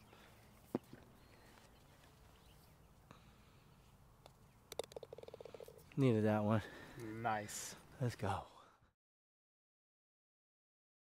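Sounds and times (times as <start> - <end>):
golf ball clicking into cup: 4.2 - 5.8
putter tapping golf ball: 4.2 - 6.0.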